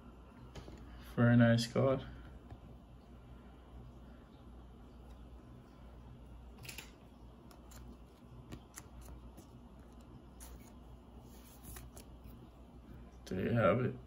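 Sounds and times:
low room hum: 0.0s - 14.0s
card sliding into plastic sleeve: 7.5s - 12.3s.

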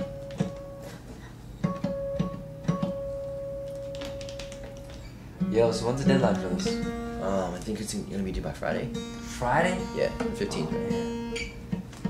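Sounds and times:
acoustic guitar note plucked: 0.0s - 7.6s, 8.7s - 12.0s.

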